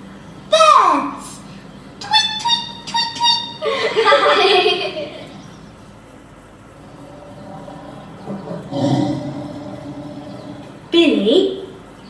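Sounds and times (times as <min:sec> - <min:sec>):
cartoon tiger roar: 0:06.8 - 0:10.9.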